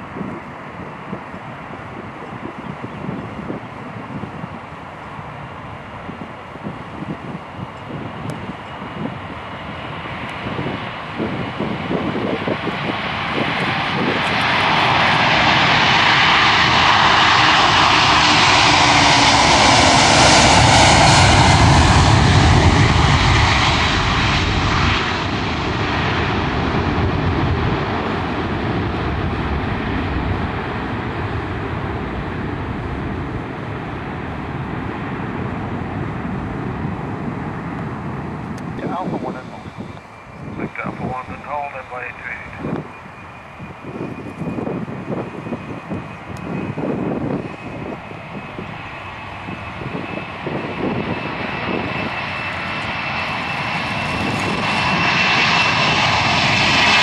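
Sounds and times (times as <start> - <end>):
jet engines roaring at take-off: 0.0 - 57.0.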